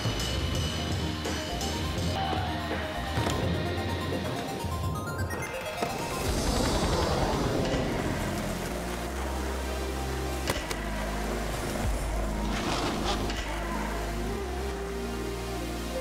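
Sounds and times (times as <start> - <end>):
music with deep bass: 0.0 - 16.0
skateboard wheels rolling: 11.7 - 13.6.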